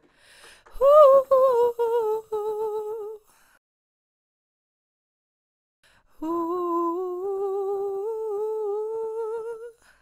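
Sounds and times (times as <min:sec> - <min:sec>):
woman singing long wordless note: 0:00.8 - 0:03.2, 0:06.2 - 0:09.8.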